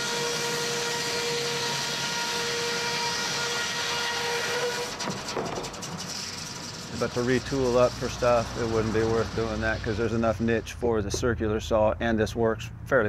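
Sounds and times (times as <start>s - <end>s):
circular saw cutting log: 0.0s - 10.9s.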